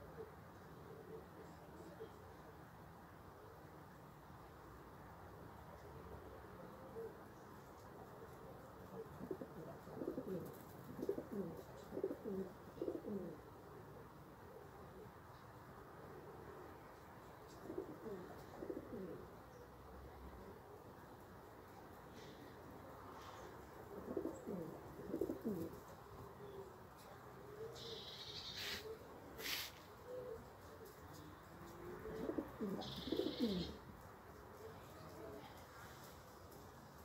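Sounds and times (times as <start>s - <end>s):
pigeon cooing: 6.6s - 15.2s, 17.5s - 19.4s, 23.2s - 33.9s.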